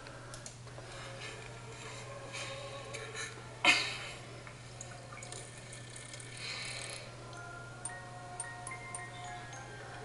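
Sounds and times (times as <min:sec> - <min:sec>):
small clicks: 0:00.0 - 0:00.6
faint television soundtrack: 0:00.0 - 0:10.0
quiet chiming music: 0:06.8 - 0:10.0.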